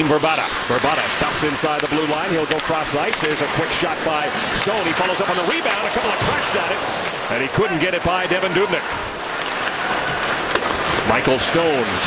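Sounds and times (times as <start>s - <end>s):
arena crowd noise: 0.0s - 12.0s
sticks and puck clicking on ice: 0.7s - 7.2s, 9.3s - 11.4s.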